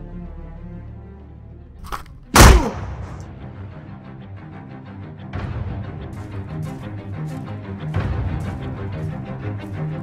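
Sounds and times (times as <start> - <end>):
background soundtrack music: 0.0 - 10.0.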